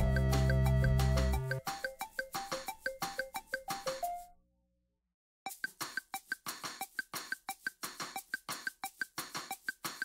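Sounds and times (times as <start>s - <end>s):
music with percussive beat: 0.0s - 4.2s, 5.5s - 10.0s.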